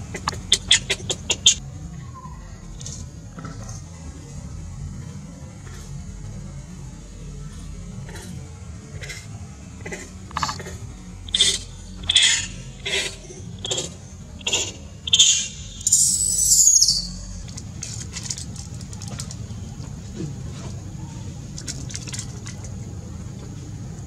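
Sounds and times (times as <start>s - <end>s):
infant monkey crying: 11.3s - 17.4s.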